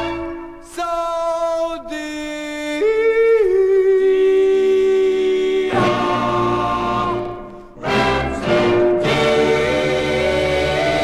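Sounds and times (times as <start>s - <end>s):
vocal group singing harmony: 4.1s - 11.0s.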